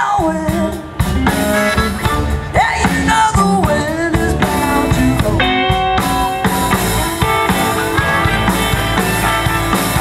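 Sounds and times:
bass guitar: 0.0s - 10.0s
drum kit: 0.0s - 10.0s
electric guitar: 0.0s - 10.0s.

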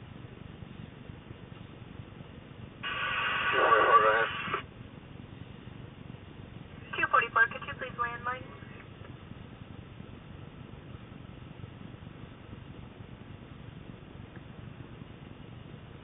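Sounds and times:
low steady rumble: 0.0s - 16.0s
distorted voice bursts: 2.8s - 4.6s.

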